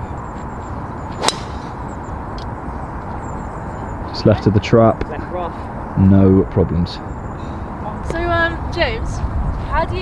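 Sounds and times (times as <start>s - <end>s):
golf ball struck by driver: 1.2s - 1.8s.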